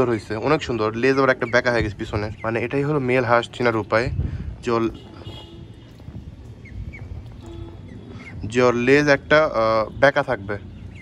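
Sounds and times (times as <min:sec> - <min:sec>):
ducklings peeping: 0:06.5 - 0:08.5.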